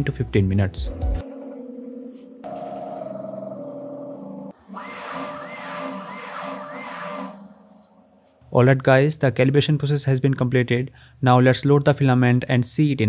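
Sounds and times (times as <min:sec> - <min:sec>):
warbling whine: 0:01.2 - 0:08.4.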